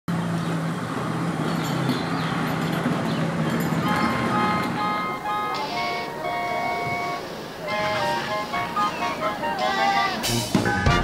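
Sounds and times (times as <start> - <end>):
engine hum: 0.1 - 11.0
brass band music: 3.8 - 11.0.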